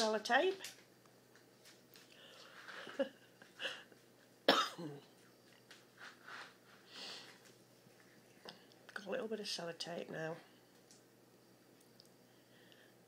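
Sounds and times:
person coughing: 4.5 - 5.1.

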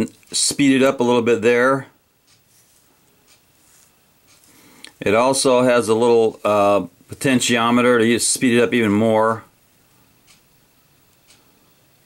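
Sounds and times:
rustling handling noise: 2.3 - 7.5.

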